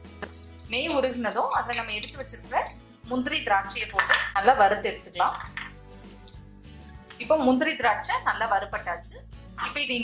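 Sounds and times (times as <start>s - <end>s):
background music: 0.0s - 10.0s
person speaking: 0.7s - 2.8s.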